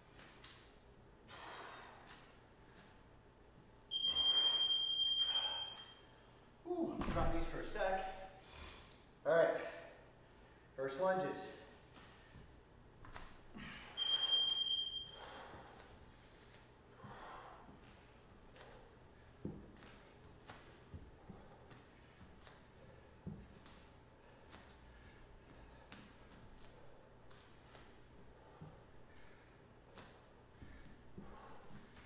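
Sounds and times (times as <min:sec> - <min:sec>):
breathing: 0:01.3 - 0:02.3, 0:08.4 - 0:10.8, 0:13.5 - 0:20.0, 0:24.2 - 0:32.0
electronic timer beep: 0:03.9 - 0:06.0, 0:14.0 - 0:15.2.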